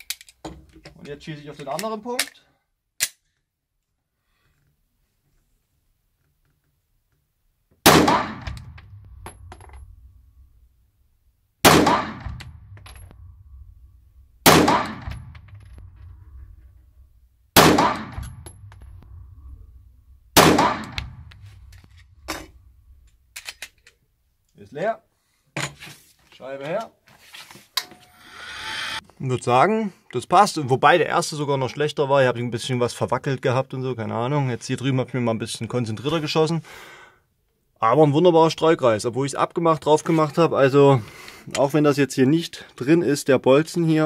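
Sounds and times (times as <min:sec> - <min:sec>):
pistol shots echoing indoors: 0:07.9 - 0:08.8, 0:11.7 - 0:13.2, 0:14.4 - 0:15.3, 0:17.6 - 0:18.4, 0:20.4 - 0:21.3.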